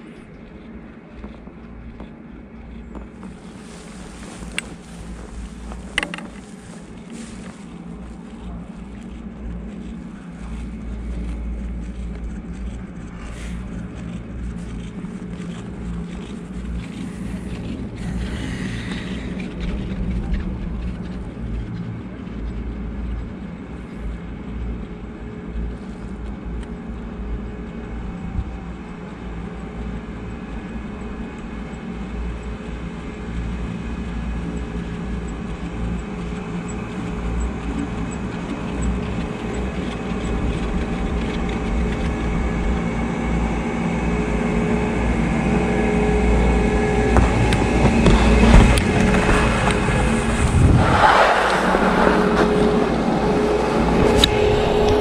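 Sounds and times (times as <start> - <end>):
faint steady hum: 0.0 - 50.8
chairlift mechanical rumble: 0.0 - 55.0.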